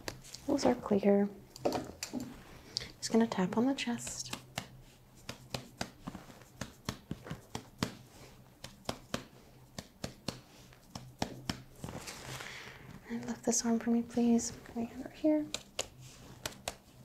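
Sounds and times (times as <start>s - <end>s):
finger tapping on chest: 3.5s - 11.7s, 15.5s - 16.8s
hands rustling: 3.9s - 13.0s, 14.6s - 17.0s.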